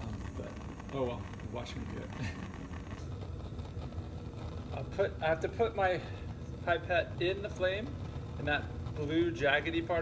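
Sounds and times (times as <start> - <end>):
gas flame rushing: 0.0 - 10.0.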